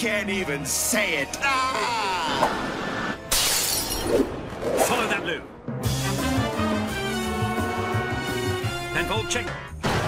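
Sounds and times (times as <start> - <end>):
glass shattering: 3.3 - 4.2.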